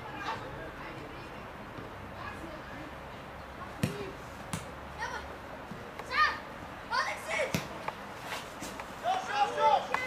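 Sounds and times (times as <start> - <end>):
ball being kicked: 3.8 - 4.7
boys shouting: 6.0 - 7.6, 9.0 - 10.0.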